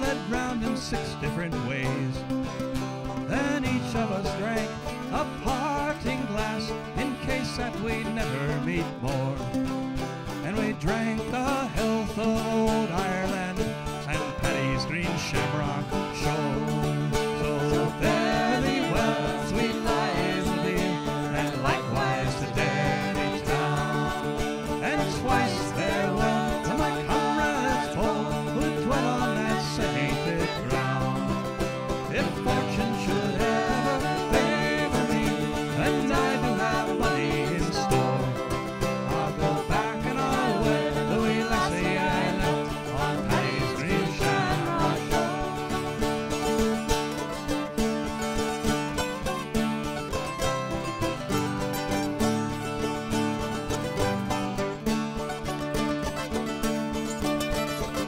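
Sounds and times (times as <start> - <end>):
banjo: 0.0 - 58.0
mandolin plucked melody: 0.0 - 58.0
steel-string guitar: 0.0 - 58.0.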